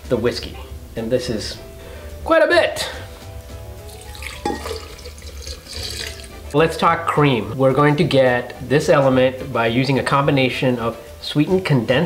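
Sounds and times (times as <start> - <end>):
soft background music: 0.0 - 12.0
liquid pouring into glass jar: 3.9 - 6.4.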